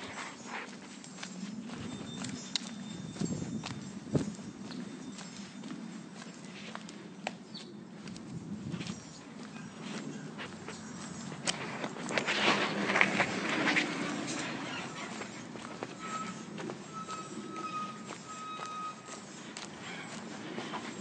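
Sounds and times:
footsteps on pavement: 0.0 - 21.0.

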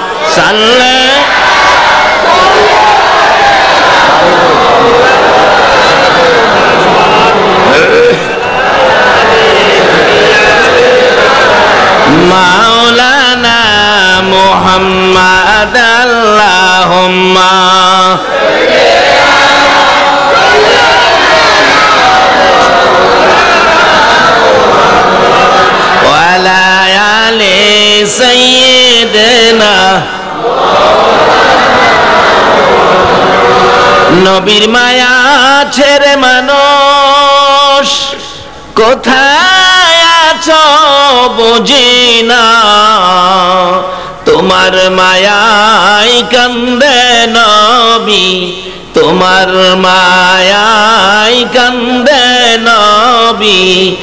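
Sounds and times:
man singing devotional line: 0.0 - 1.4, 12.0 - 18.3, 26.0 - 30.4, 33.8 - 54.0
men chanting together: 0.2 - 36.6.

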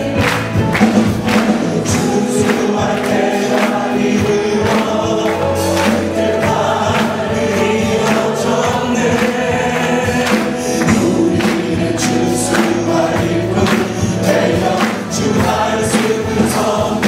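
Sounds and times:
group singing praise song: 0.0 - 17.0
instrumental accompaniment with beat: 0.0 - 17.0.

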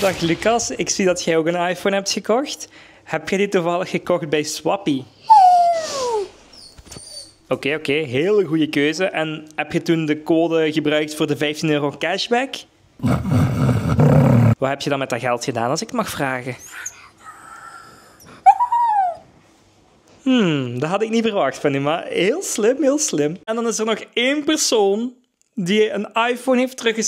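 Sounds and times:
dog whimpering: 5.3 - 7.4, 18.2 - 19.3
pet animal drawn-out call: 18.2 - 19.2.

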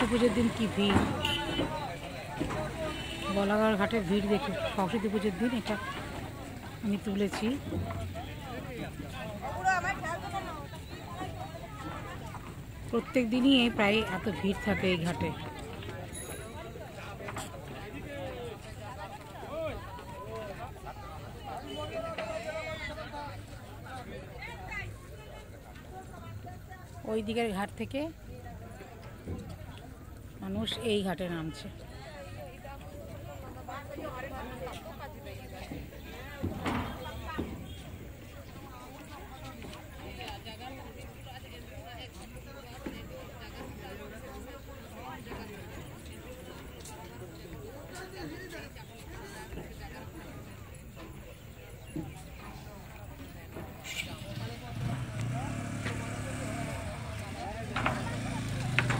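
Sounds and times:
faint background voices: 0.0 - 58.9
people talking: 0.0 - 58.9.

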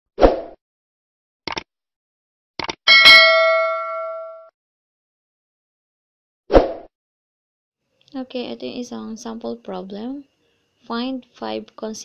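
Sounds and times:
bright bell ding: 2.9 - 4.5.

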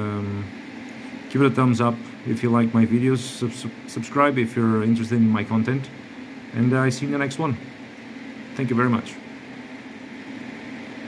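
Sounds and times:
cooling fans whirring: 0.0 - 11.0.

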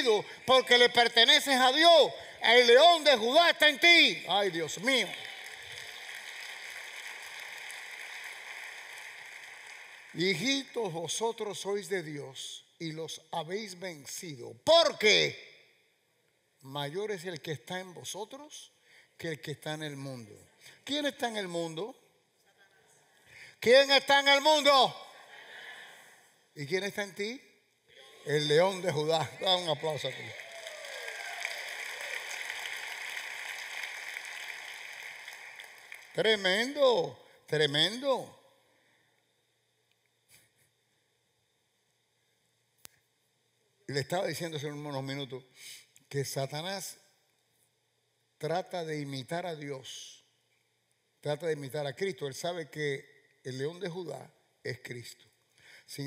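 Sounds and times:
crowd applauding: 0.0 - 1.2, 4.0 - 10.8, 28.4 - 36.8
room noise hiss: 0.0 - 56.0.

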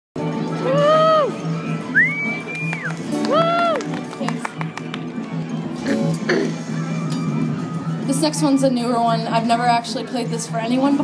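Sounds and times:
high whistle: 1.9 - 3.0.

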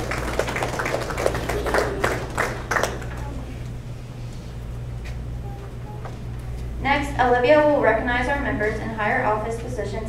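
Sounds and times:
audience applauding: 0.0 - 3.6
low steady hum: 0.0 - 10.0.

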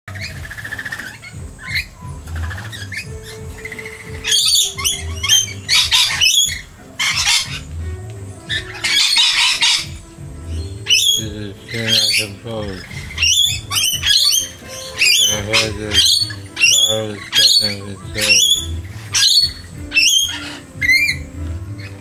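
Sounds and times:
background music: 0.1 - 22.0
lorikeets screeching: 0.1 - 22.0.

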